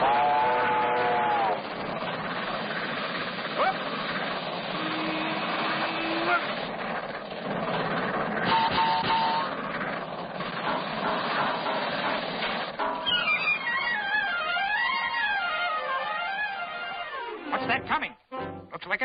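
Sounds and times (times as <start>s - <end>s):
cartoon steam locomotive hissing: 0.0s - 17.6s
rising glide tone: 13.2s - 17.6s.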